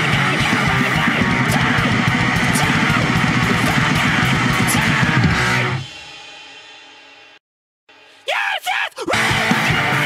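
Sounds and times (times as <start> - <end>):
fast punk song: 0.0 - 10.0
person shouting: 8.2 - 9.4.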